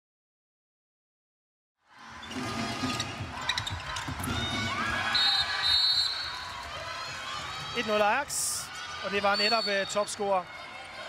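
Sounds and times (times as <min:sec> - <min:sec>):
crowd noise with voices: 0:01.8 - 0:11.0.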